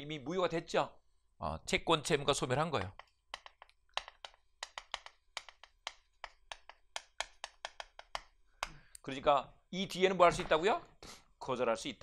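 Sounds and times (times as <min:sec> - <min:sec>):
chalk writing on a chalkboard: 0:02.8 - 0:08.8.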